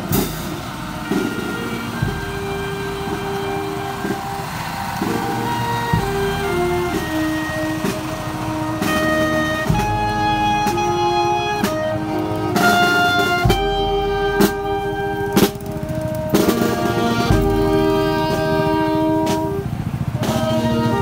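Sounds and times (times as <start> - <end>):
bass drum strokes: 0.0 - 21.0
marching brass band playing: 0.0 - 21.0.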